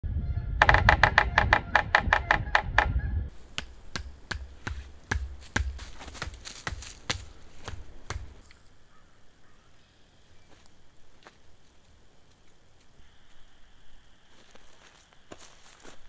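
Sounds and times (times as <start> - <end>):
woodpecker drumming on wood: 0.6 - 8.4
sharp knocks on wood: 3.6 - 8.4.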